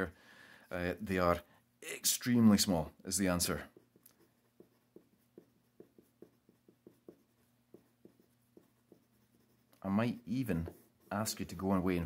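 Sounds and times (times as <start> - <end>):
pen scratching on paper: 3.3 - 11.9.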